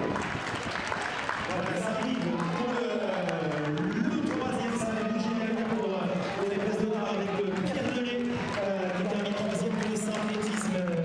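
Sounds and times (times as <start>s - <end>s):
crowd noise: 0.0s - 11.0s
man talking: 1.5s - 11.0s.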